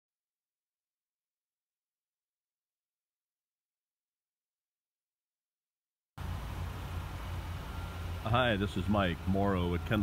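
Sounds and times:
faint recording hiss: 6.2s - 10.0s.

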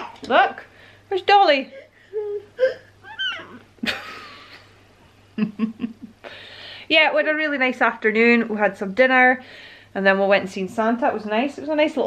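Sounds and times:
toddler whiny cries: 2.2s - 3.6s.

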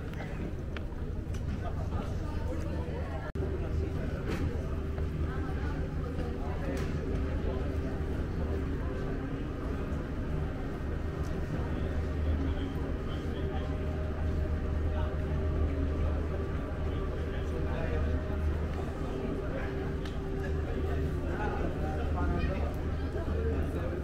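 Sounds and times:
faint voices: 0.0s - 24.0s
steady low hum: 0.0s - 24.0s.

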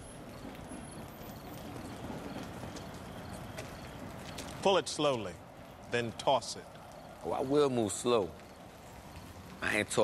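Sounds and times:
outdoor night background noise: 0.0s - 10.0s.

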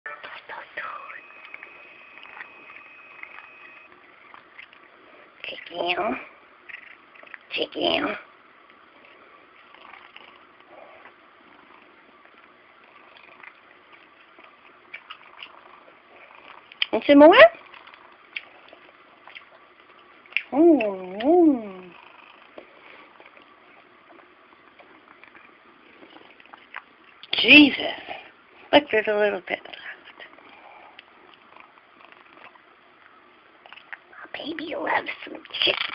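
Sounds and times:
person whispering: 0.1s - 1.4s
cat chewing and licking: 0.3s - 7.6s, 8.6s - 16.9s, 17.5s - 27.3s, 30.0s - 34.1s.

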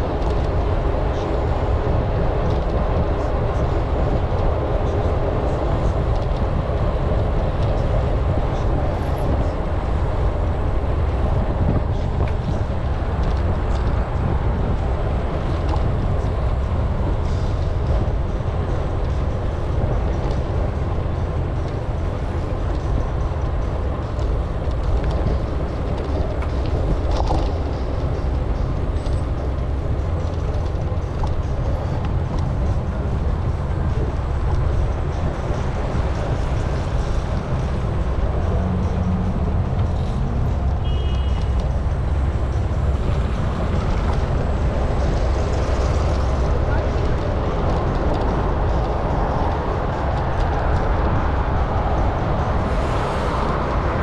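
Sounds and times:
bicycle tyre and road noise: 0.0s - 54.0s
wind rumble on microphone: 0.0s - 54.0s.

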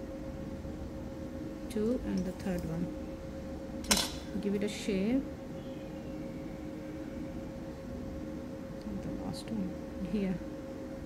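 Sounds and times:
background hum: 0.0s - 11.0s
faint constant tone: 0.0s - 11.0s.

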